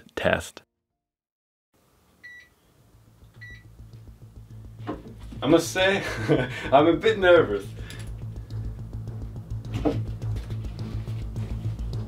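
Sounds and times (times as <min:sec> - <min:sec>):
low electrical hum: 0:01.8 - 0:10.8.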